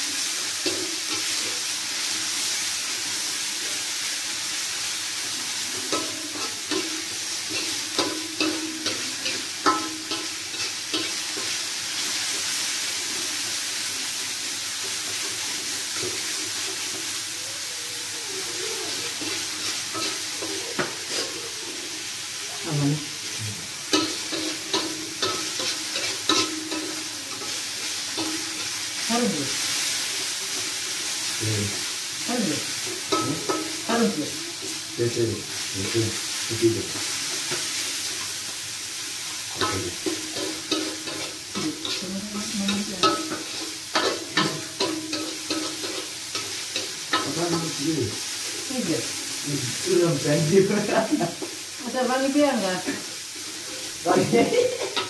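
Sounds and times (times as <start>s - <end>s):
food sizzling in oil: 0.0s - 55.0s
metal spatula scraping pan: 19.1s - 21.4s, 23.9s - 28.8s, 39.5s - 47.8s, 52.8s - 55.0s.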